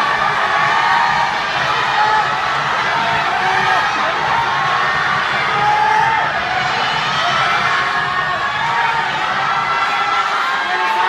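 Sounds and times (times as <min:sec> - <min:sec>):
large audience cheering: 0:00.0 - 0:11.0.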